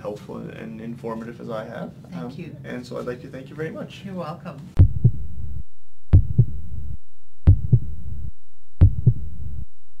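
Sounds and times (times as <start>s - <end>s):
heartbeat double thump: 4.8s - 9.8s.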